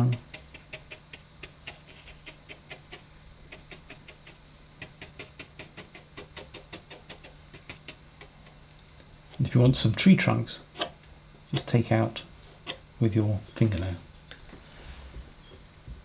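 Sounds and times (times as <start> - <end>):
faint steady hum: 0.0 - 16.0.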